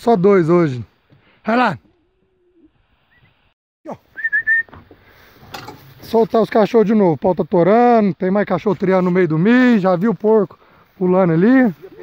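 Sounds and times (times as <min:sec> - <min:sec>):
short whistle: 0:04.1 - 0:04.8.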